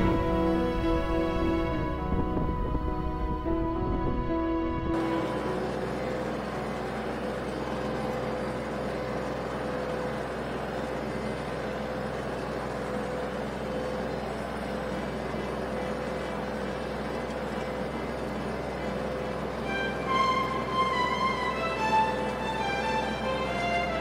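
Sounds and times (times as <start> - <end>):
constant whine: 0.0 - 24.0
tractor diesel engine under load: 0.0 - 24.0.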